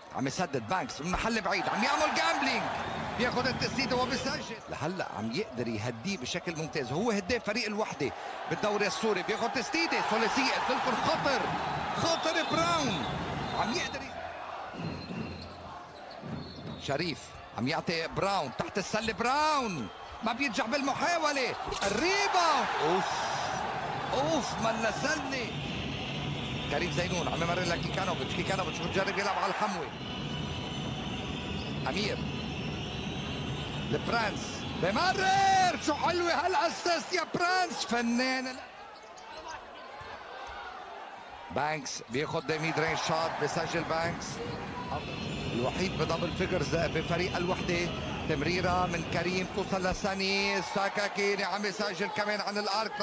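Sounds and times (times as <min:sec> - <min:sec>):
indoor arena echo: 0:00.0 - 0:53.0.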